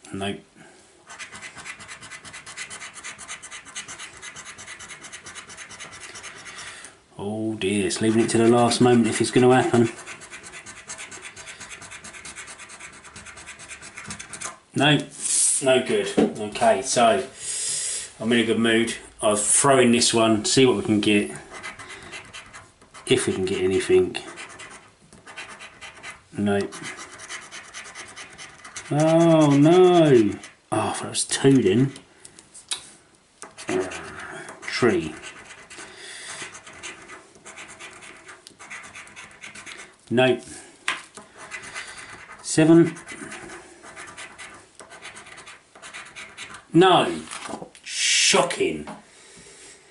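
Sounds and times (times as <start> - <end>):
scratching a scratchcard: 1.1 - 6.7, 7.9 - 14.6, 21.4 - 30.6, 33.4 - 40.0, 41.1 - 47.5.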